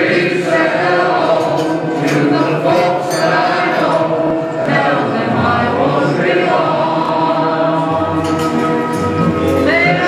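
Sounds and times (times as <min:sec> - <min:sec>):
group singing long notes: 0:00.0 - 0:10.0.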